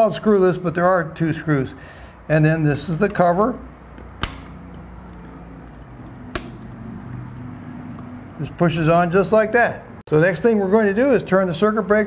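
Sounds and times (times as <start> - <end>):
plastic cover snapping clicks: 4.0 - 5.1.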